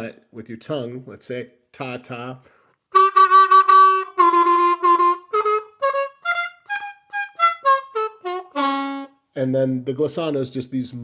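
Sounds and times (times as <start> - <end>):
harmonica staccato notes: 2.9 - 9.1.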